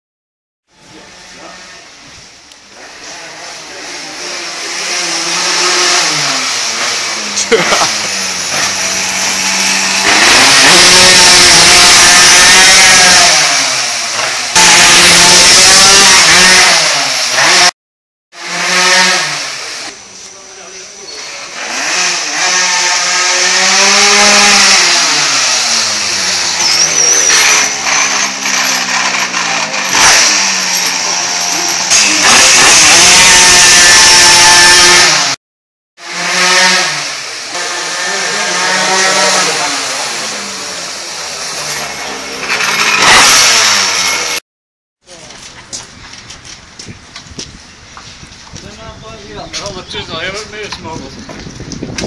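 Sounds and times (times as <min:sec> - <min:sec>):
small motorbike engine running: 0:02.8 - 0:17.7, 0:21.2 - 0:35.4, 0:36.0 - 0:44.4.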